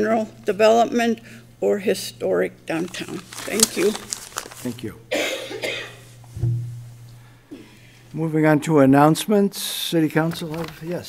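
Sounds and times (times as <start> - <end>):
low electrical hum: 0.0 - 11.0
man coughing: 5.1 - 6.1.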